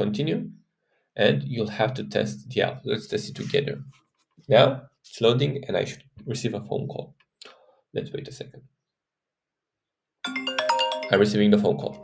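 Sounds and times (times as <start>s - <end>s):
smartphone ringtone melody: 10.2s - 12.0s.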